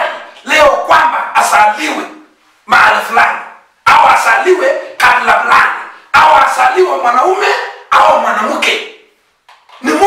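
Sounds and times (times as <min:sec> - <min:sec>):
man preaching loudly: 0:00.0 - 0:09.1, 0:09.7 - 0:10.0.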